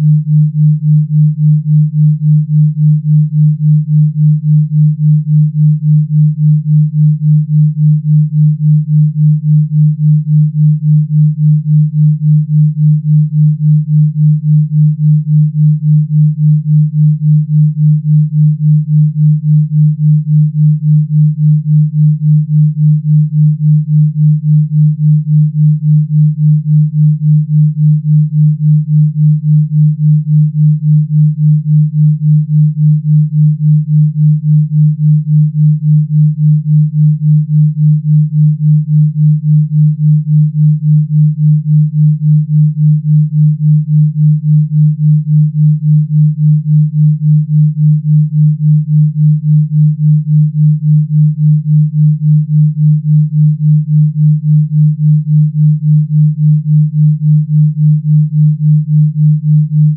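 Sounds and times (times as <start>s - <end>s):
low pulsing sine tone: 0.0s - 59.9s.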